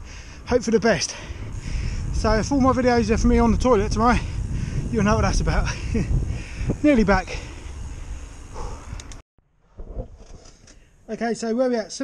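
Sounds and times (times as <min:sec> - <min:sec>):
wind rushing over microphone: 0:00.0 - 0:09.2
short clicks: 0:08.9 - 0:09.2.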